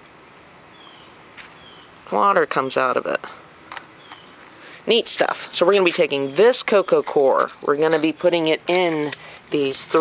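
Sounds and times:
bird chirps: 0.7s - 1.9s, 4.0s - 4.4s.

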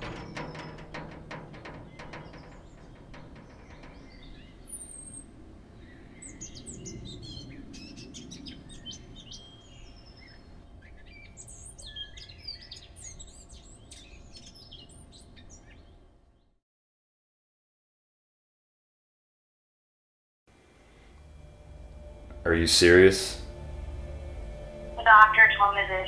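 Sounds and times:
low steady background rumble: 0.0s - 15.9s, 20.9s - 26.0s
birds chirping and calling: 0.0s - 16.0s.

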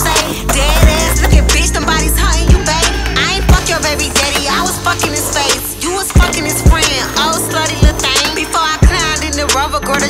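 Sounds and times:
hip-hop track with steady beat: 0.0s - 10.0s.

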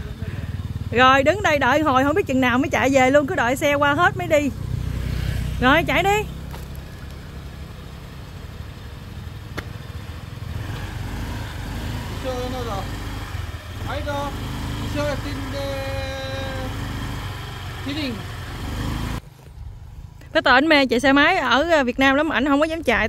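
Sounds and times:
scooter engine idling: 0.0s - 20.6s.

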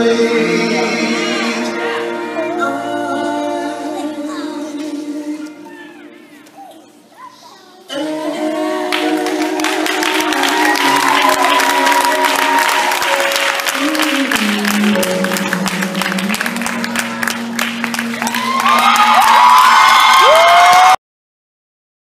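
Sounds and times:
recorded song: 0.0s - 20.8s
audience applauding and cheering: 8.9s - 21.0s
whoops: 10.3s - 13.2s, 18.2s - 21.0s.

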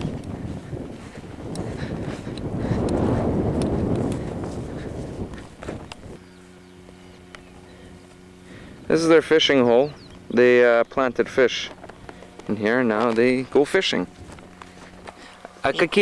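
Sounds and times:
wind rushing on microphone: 0.0s - 6.3s
footsteps through long grass: 0.0s - 16.0s
steady low hum: 0.0s - 16.0s.

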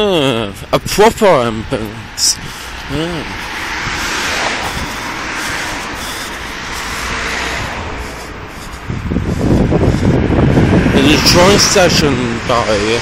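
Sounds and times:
road traffic passing: 0.0s - 13.0s
wind rumble on microphone: 0.5s - 13.0s.

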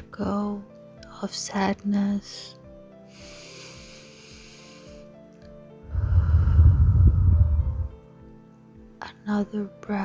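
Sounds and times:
soft background music: 0.0s - 10.0s
woman breathing into microphone: 5.9s - 8.0s.

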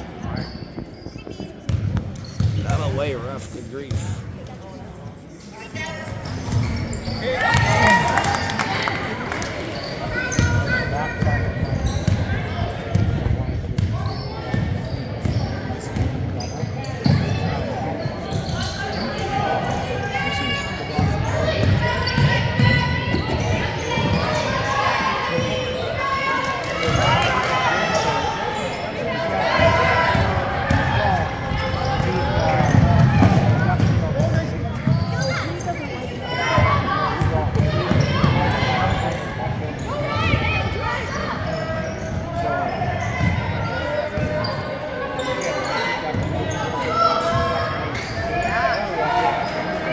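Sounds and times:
voices calling and talking: 0.0s - 49.9s.

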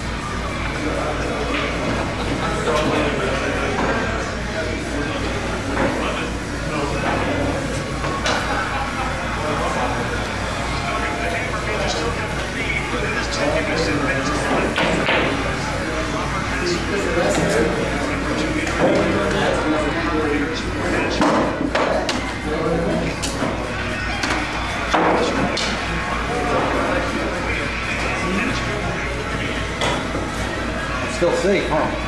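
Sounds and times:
indistinct background chatter: 0.0s - 32.0s
pool cue striking ball: 14.4s - 15.5s, 24.2s - 25.8s.

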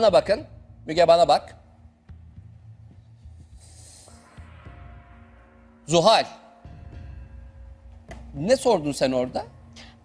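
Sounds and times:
quiet suspense music: 0.0s - 10.0s.

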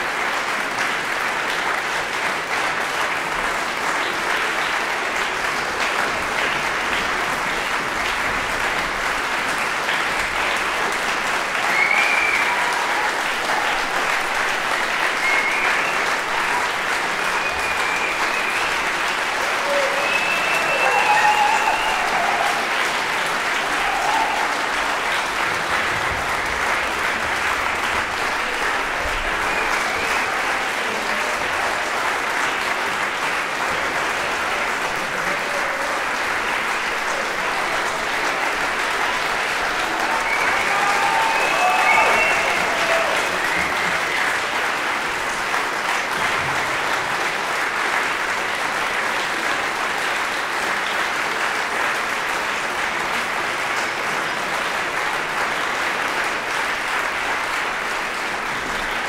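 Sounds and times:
audience applauding: 0.0s - 59.0s
voices over clapping: 0.0s - 59.0s.

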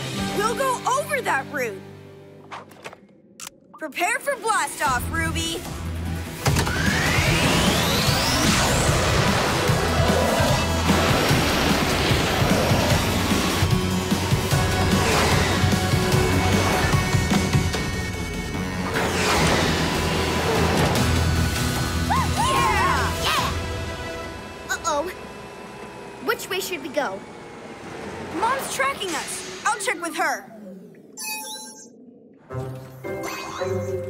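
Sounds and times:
background music: 0.0s - 2.9s, 4.3s - 25.7s, 32.5s - 34.0s.

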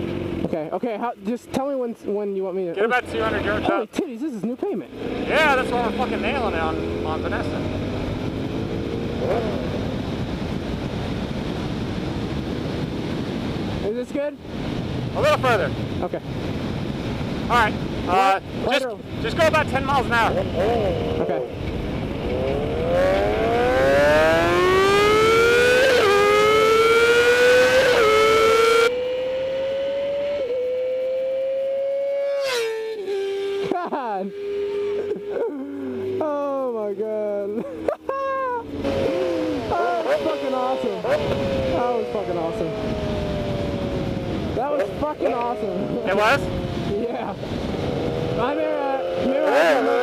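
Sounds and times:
motorcycle engine running: 0.0s - 0.8s, 20.1s - 36.8s
motorcycle engine at full throttle: 0.0s - 1.7s, 4.8s - 50.0s
person speaking: 3.0s - 7.8s, 35.2s - 43.0s
wind rushing over microphone: 4.9s - 32.3s, 38.5s - 50.0s.

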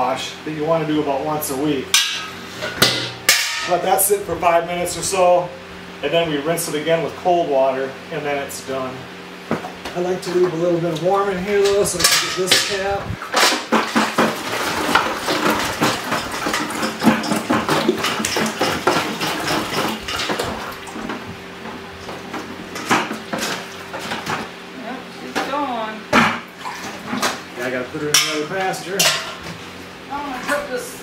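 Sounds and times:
steady low hum: 0.0s - 31.0s
clanks of metal and plastic: 11.6s - 24.5s
rinse water sloshing and pouring: 11.6s - 24.5s, 26.5s - 27.5s.

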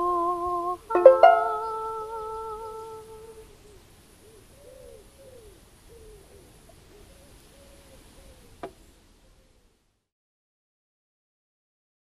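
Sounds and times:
banjolele chord: 0.0s - 3.4s
wavering hummed or sung tone: 0.0s - 3.6s.

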